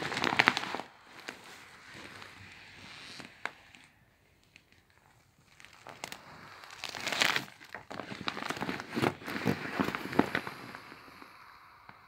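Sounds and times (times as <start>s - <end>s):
air mattress crinkling: 0.0s - 11.2s.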